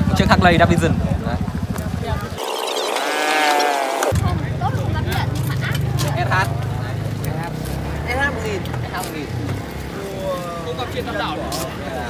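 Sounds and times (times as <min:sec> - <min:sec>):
motorcycle engines idling: 0:00.0 - 0:12.0
wavering pitched call: 0:02.2 - 0:04.1.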